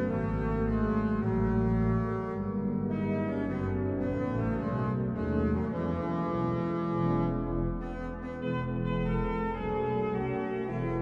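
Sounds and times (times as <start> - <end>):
pipe organ chords: 0.0 - 11.0.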